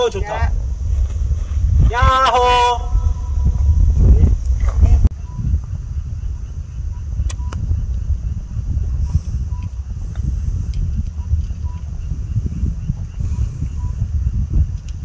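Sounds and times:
wind buffeting microphone: 0.0 - 15.0
sharp click: 7.2 - 7.6.

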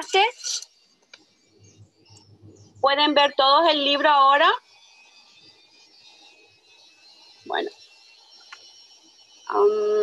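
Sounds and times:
machinery running: 2.0 - 10.0
thin high-pitched tones: 7.0 - 10.0.

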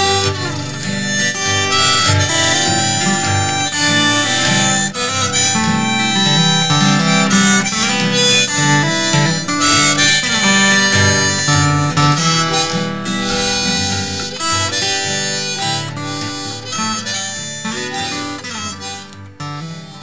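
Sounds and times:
acoustic guitar: 0.0 - 20.0
harmonica: 0.0 - 20.0.

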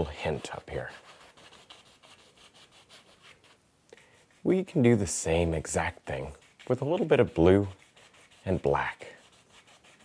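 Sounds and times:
brush swishing on canvas: 0.0 - 10.0.

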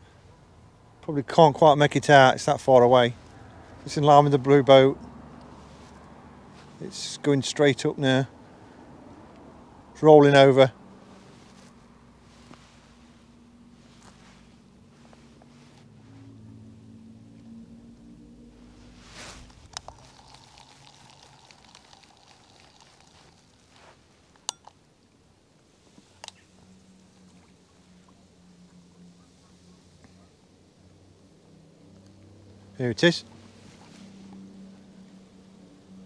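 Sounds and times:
distant aircraft piston engine drone: 26.2 - 36.0.

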